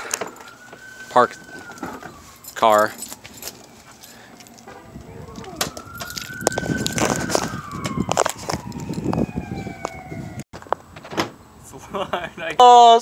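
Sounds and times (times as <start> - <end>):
siren wailing: 0.0 - 10.4.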